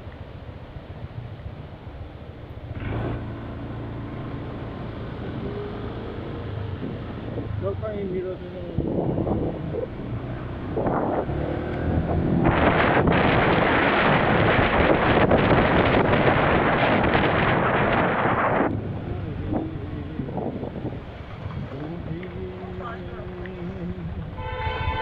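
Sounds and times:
engine hum: 0.0 - 25.0
street traffic: 0.0 - 25.0
wind rushing over microphone: 4.4 - 25.0.

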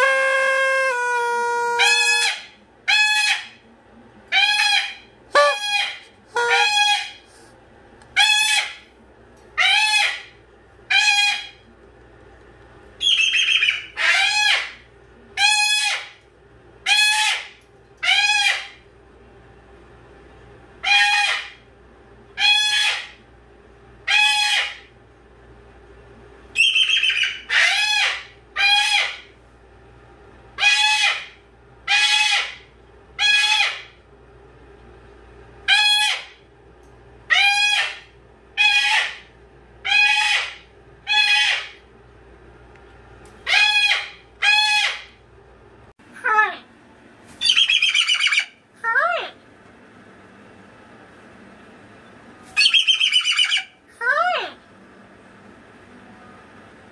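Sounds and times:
cockatoo calling: 0.0 - 3.6, 4.3 - 7.2, 9.6 - 11.6, 13.0 - 14.8, 16.8 - 18.8, 20.8 - 21.6, 22.4 - 23.2, 24.0 - 24.9, 26.6 - 29.3, 30.6 - 34.0, 35.7 - 36.4, 37.3 - 41.8, 43.4 - 45.2, 47.4 - 49.3, 52.6 - 54.6
rasping cockatoo screech: 38.6 - 39.2, 52.6 - 53.7.

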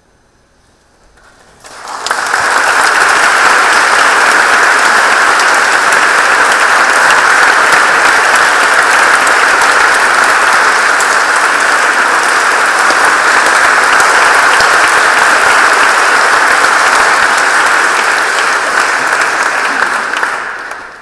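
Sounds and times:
audience applauding: 1.3 - 21.0.

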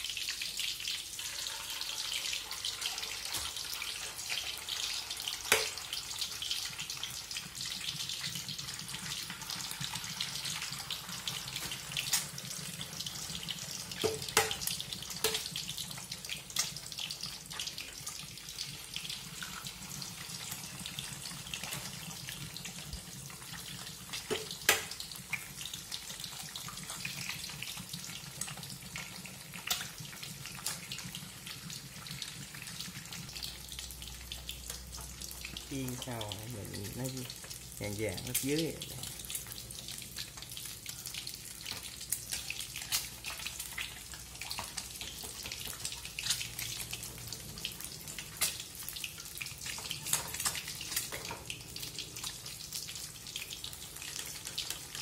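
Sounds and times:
food sizzling in oil: 0.0 - 55.0.

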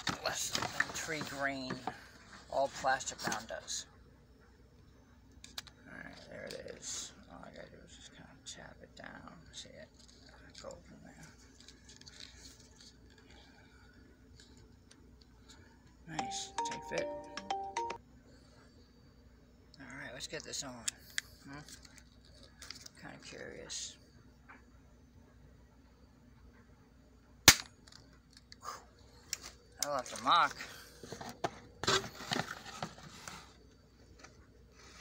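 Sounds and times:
air pistol shot crack: 27.5 - 27.7.

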